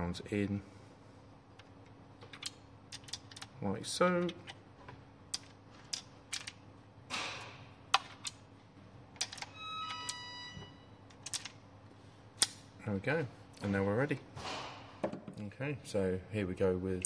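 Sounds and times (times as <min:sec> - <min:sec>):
short ringing tone: 0:09.5 - 0:11.0.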